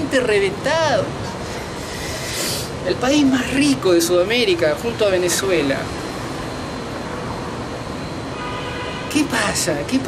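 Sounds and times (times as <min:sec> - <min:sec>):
distant city traffic hum: 0:00.0 - 0:10.0.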